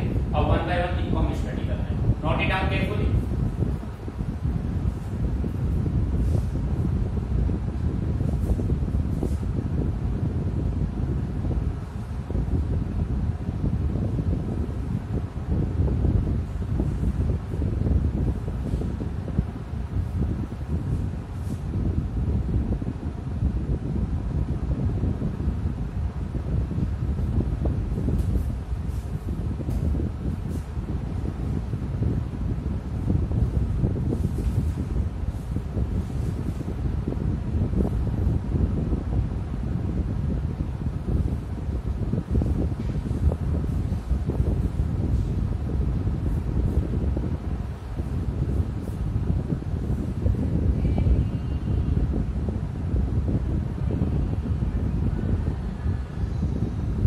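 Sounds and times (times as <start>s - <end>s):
low rushing noise: 0.0s - 57.0s.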